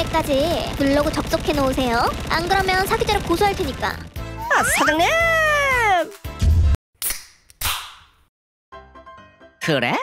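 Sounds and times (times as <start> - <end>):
woman wailing: 4.4 - 6.0.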